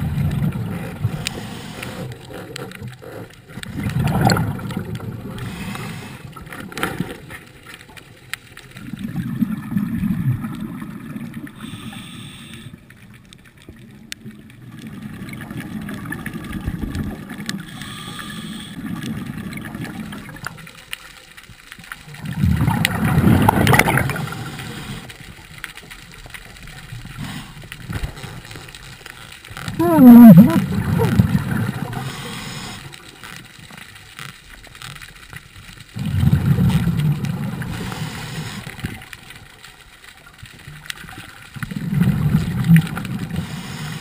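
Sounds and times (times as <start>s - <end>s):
underwater bubbles gurgling: 0.0s - 44.0s
water moving past camera: 0.0s - 44.0s.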